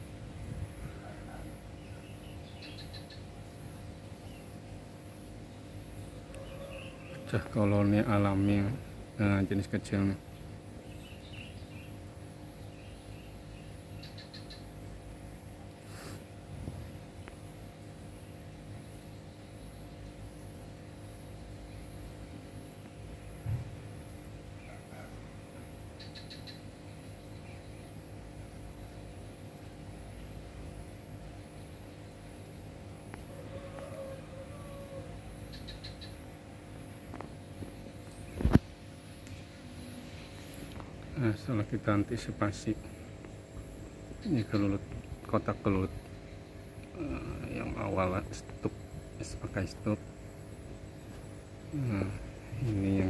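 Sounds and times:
steady low hum: 0:00.0 - 0:53.0
bird chirping: 0:01.8 - 0:03.4, 0:10.8 - 0:14.9, 0:26.0 - 0:28.0, 0:35.4 - 0:36.3.

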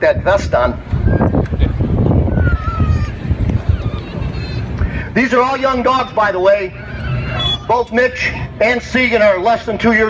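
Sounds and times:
wind buffeting microphone: 0:00.0 - 0:08.6
distant crowd voices: 0:00.6 - 0:10.0.

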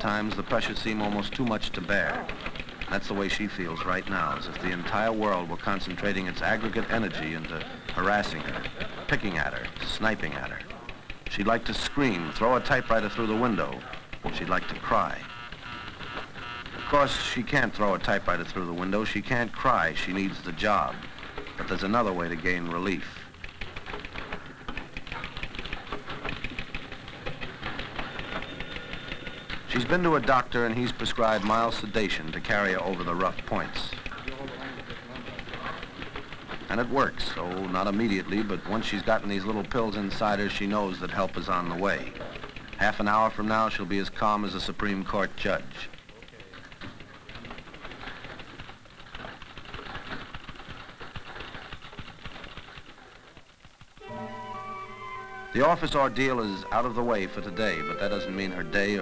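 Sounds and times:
typewriter keys clattering: 0:00.0 - 0:54.0, 0:55.6 - 0:59.0.

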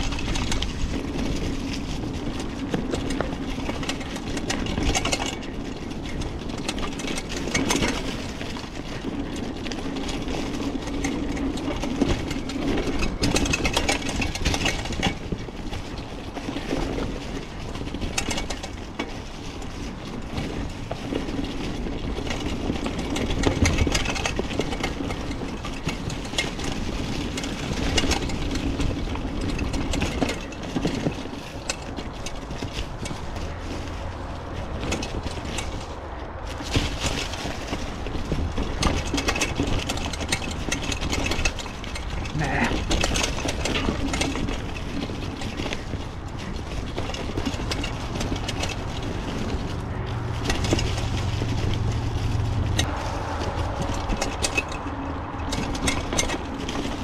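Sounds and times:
loose parts rattling: 0:00.0 - 0:57.0
tyres rolling through dry leaves: 0:00.0 - 0:57.0.

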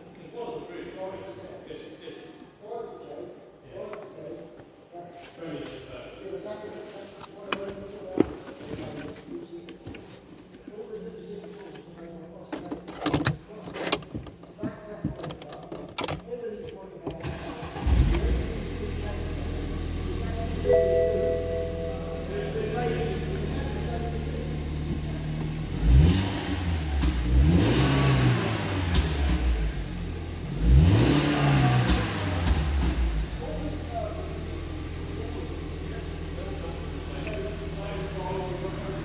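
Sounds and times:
car engine idling and revving: 0:17.2 - 0:39.0.

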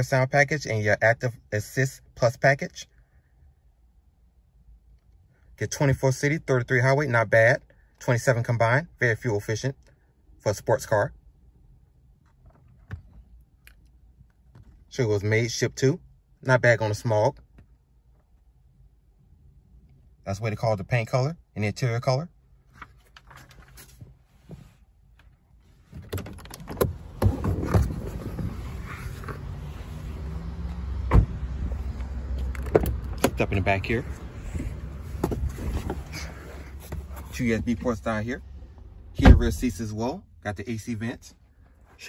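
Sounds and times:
car door closing thud: 0:31.0 - 0:31.5, 0:39.2 - 0:39.8
car door clicks and knocks: 0:31.1 - 0:31.4, 0:32.5 - 0:33.4.

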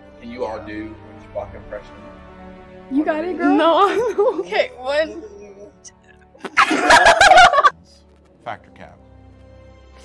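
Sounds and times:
girl giggling: 0:06.4 - 0:07.7.

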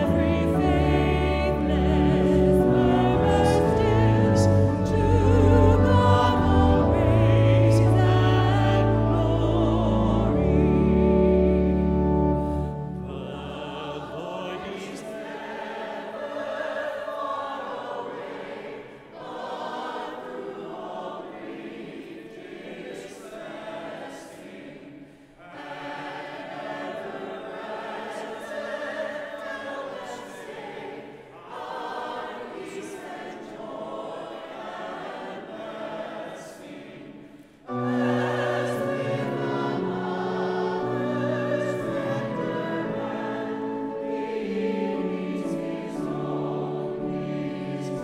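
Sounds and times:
choir singing a hymn: 0:00.0 - 0:48.0.

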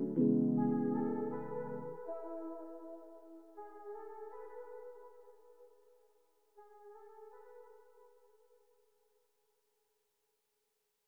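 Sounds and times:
held synth chord: 0:00.0 - 0:02.1.

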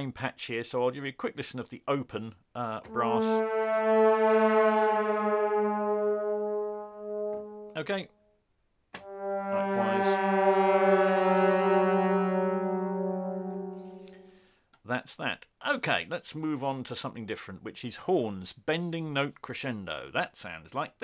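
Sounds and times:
sustained brass chord: 0:02.9 - 0:08.0, 0:09.0 - 0:14.5.

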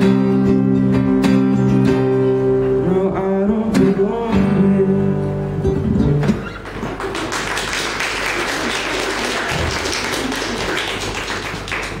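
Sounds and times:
acoustic guitar song: 0:00.0 - 0:07.0
person singing: 0:02.8 - 0:05.4
audience applause: 0:06.4 - 0:12.0.

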